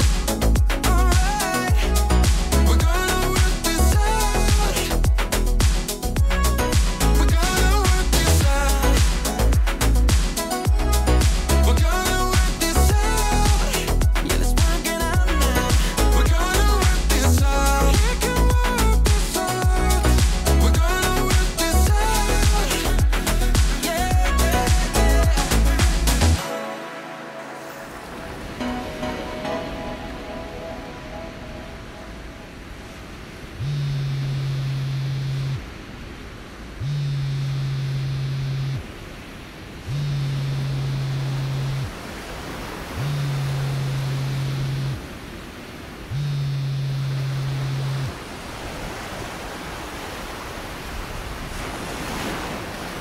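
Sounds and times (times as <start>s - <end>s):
sea surf: 0.0s - 53.0s
wind: 0.0s - 53.0s
low buzzing tone: 33.5s - 35.7s, 36.8s - 38.9s, 39.9s - 42.0s, 43.0s - 45.1s, 46.1s - 48.2s.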